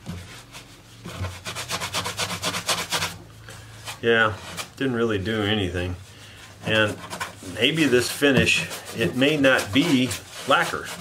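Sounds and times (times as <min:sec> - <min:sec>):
cloth rag rubbing guitar top: 0:00.0 - 0:03.2, 0:03.8 - 0:11.0.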